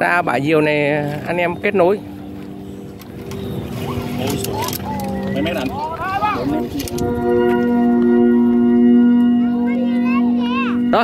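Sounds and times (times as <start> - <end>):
kite flutes droning: 1.2 - 11.0.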